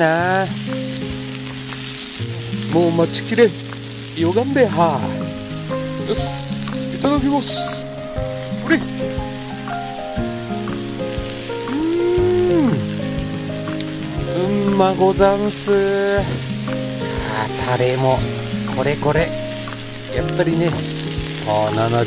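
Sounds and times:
background music of held notes: 0.0s - 22.0s
meat sizzling on a grill: 0.0s - 22.0s.

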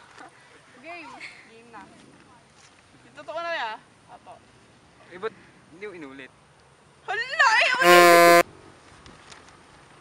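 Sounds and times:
faint outdoor background: 0.0s - 10.0s
low electronic buzzer tone: 7.8s - 8.4s.

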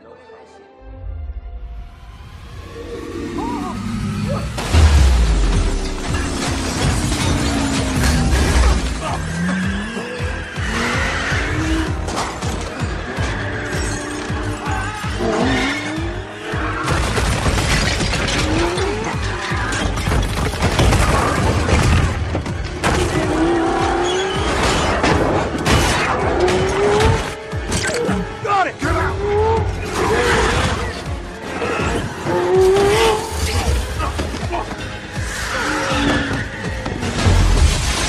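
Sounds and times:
film music score: 0.0s - 38.0s.

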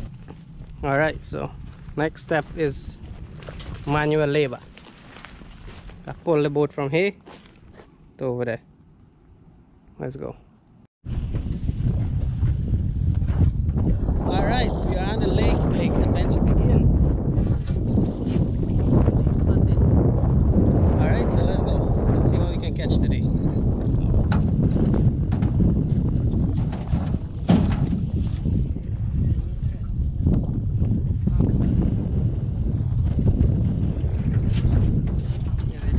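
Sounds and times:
wind buffeting microphone: 0.0s - 7.8s, 11.0s - 35.9s.

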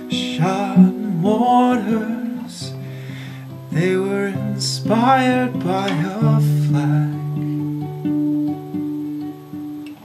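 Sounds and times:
acoustic guitar picked notes: 0.0s - 10.0s.

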